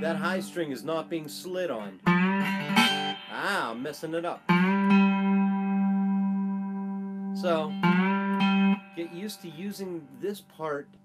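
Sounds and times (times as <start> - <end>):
slide guitar note ringing: 0.0 - 10.3.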